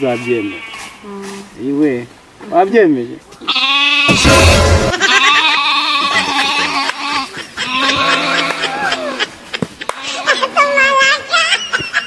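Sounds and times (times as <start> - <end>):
sheep bleating: 0.0 - 1.0, 3.4 - 9.1.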